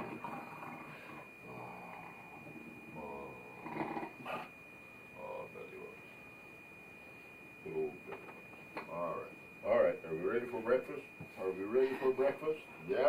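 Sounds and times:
dog whining and grumbling: 0.0 - 4.5.

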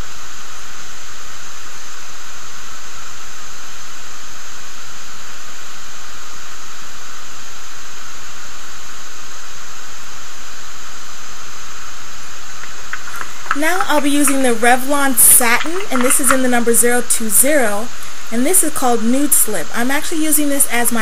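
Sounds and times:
microphone hiss: 10.8 - 21.0.

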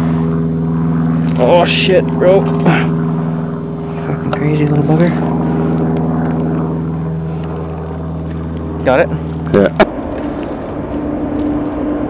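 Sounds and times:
low engine drone: 0.0 - 12.0
person speaking: 3.9 - 5.3.

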